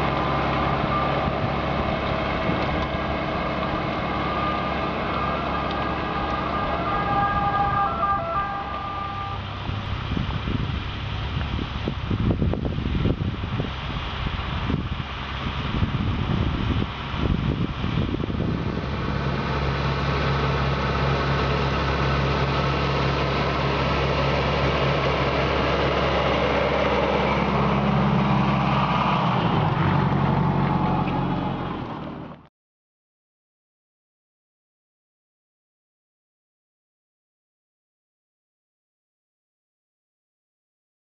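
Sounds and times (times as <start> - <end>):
tractor diesel engine under load: 0.0 - 32.5.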